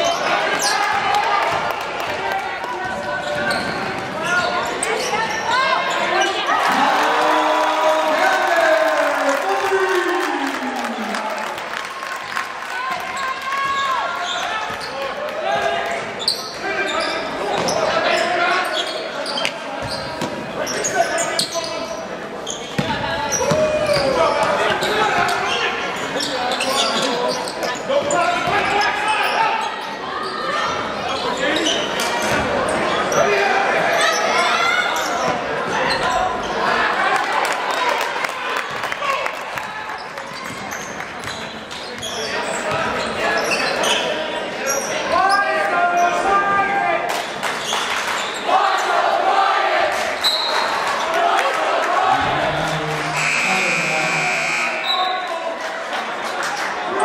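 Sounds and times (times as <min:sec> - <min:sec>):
crowd voices: 0:00.0 - 0:57.0
scoreboard buzzer: 0:53.1 - 0:54.9.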